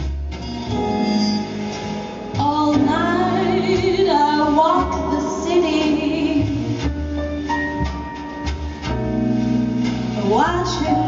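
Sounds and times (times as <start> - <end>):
woman singing into microphone: 2.4 - 6.7.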